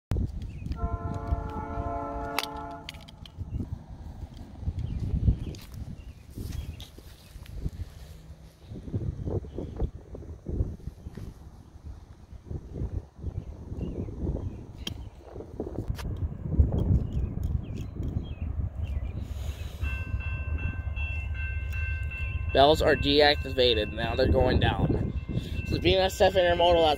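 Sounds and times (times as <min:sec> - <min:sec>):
wind rumbling on microphone: 0:00.1 - 0:26.9
distant train horn: 0:00.7 - 0:03.4, 0:24.9 - 0:26.9
crossing bell ringing: 0:19.6 - 0:26.9.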